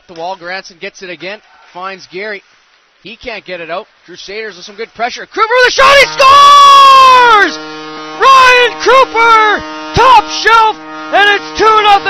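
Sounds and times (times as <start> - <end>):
commentator shouting excitedly: 5.2 - 7.6, 8.2 - 12.0.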